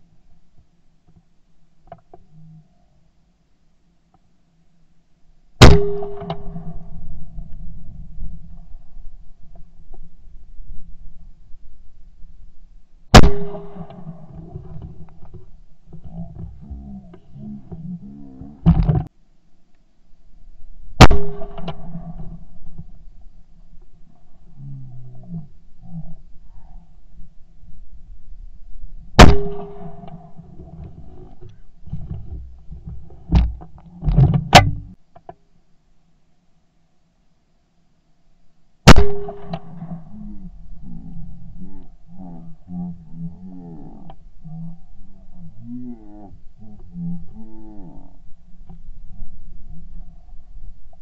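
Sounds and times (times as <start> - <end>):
shotgun shot: 5.6 - 6.8, 13.1 - 14.2, 21.0 - 21.9, 29.2 - 30.0, 38.9 - 39.7
low human voice: 16.0 - 18.7, 24.5 - 27.0, 39.8 - 48.2.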